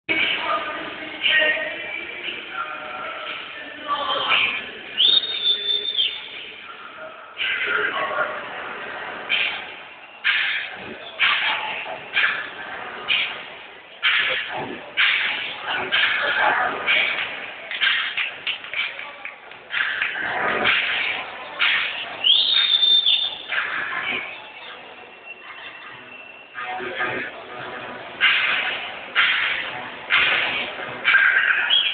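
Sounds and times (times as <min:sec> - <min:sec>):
crowd shouting and cheering: 0:00.1 - 0:31.9
high-pitched whistle: 0:05.0 - 0:06.4, 0:22.2 - 0:23.5.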